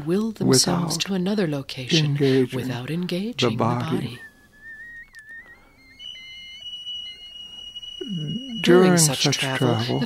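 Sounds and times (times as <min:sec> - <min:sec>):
faint wavering whistle tone: 0:03.7 - 0:10.0
high-pitched electronic tone: 0:04.7 - 0:10.0.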